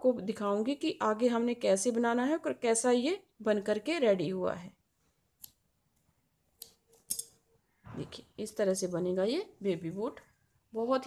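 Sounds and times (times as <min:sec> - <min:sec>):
scissors snipping yarn: 0:05.3 - 0:05.6.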